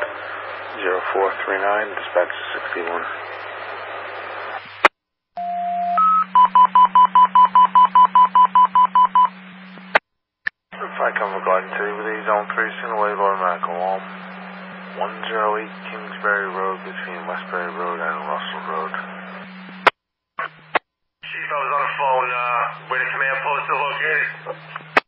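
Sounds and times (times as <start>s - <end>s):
dispatcher's voice over radio: 0.8s - 3.2s, 10.8s - 14.1s, 14.9s - 19.1s, 21.3s - 24.8s
radio squelch click: 24.4s - 25.0s.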